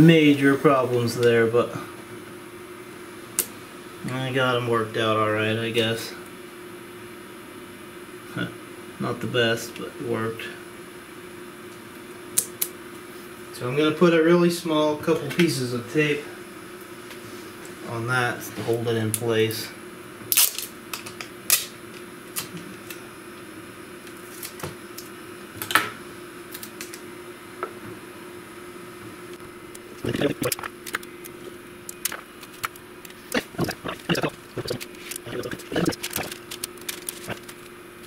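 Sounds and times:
adhesive tape tearing and crinkling: 0:20.3 - 0:20.7, 0:31.9 - 0:37.7
vacuum hum: 0:21.8 - 0:38.0.

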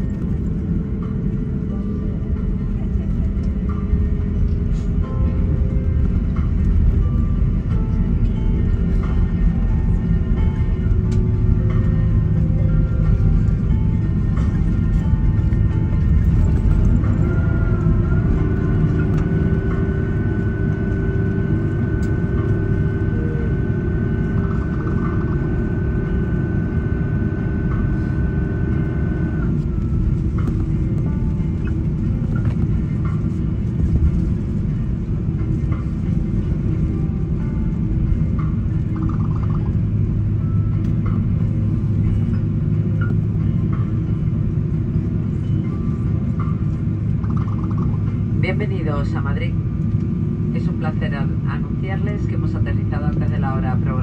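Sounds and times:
airliner cabin rumble: 0:00.0 - 0:54.0
jet engine whine: 0:00.0 - 0:54.0.

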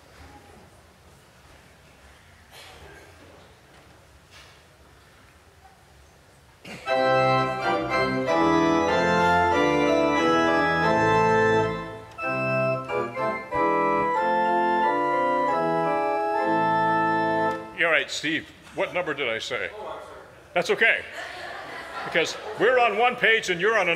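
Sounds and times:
church organ chords: 0:06.8 - 0:18.0.

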